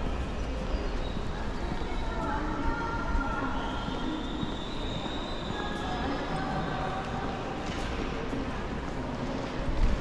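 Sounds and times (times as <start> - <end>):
train wheels squealing on rails: 0.0 - 7.0.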